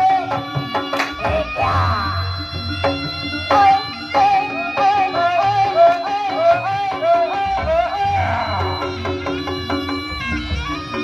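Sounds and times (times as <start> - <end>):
high wavering melody: 0.0 - 11.0.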